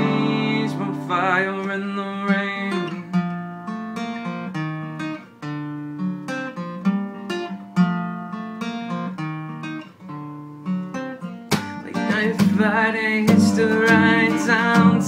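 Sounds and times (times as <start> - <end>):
man singing: 0.0 - 3.2, 11.8 - 15.0
acoustic guitar: 0.0 - 15.0.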